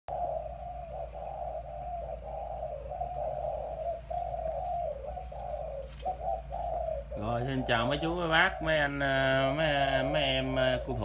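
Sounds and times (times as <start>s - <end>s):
doves cooing: 0.1s - 11.0s.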